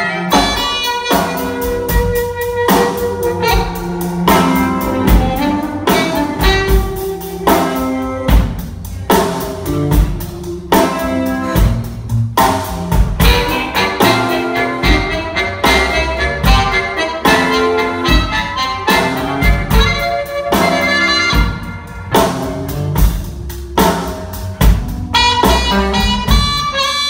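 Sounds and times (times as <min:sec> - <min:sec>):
steady drum beat: 0:00.0 - 0:27.0
upright bass: 0:00.0 - 0:27.0.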